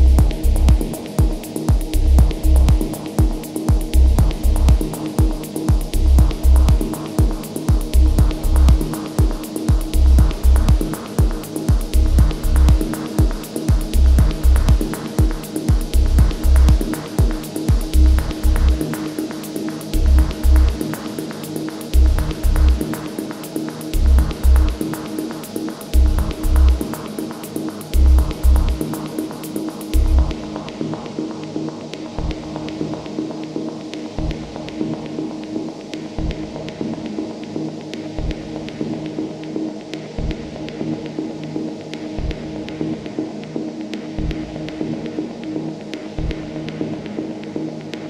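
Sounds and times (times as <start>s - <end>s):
deep kick drums: 0.0s - 18.9s, 19.9s - 20.8s, 21.9s - 22.9s, 24.0s - 24.9s, 25.9s - 26.9s, 28.0s - 28.9s, 30.0s - 30.5s, 32.2s - 32.5s, 34.2s - 34.5s, 36.2s - 36.5s, 38.2s - 38.5s, 40.2s - 40.5s, 42.2s - 42.5s, 44.2s - 44.6s, 46.2s - 46.5s
fast ticking hi-hats: 0.0s - 48.0s.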